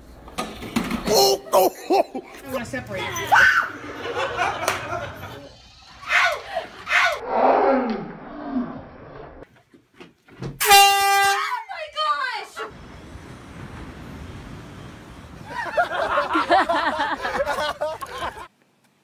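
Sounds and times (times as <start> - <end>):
shrill swooping cry: 3.1 - 3.9, 5.4 - 7.2
voices shouting: 5.3 - 7.2
loud horn blast: 10.6 - 11.5.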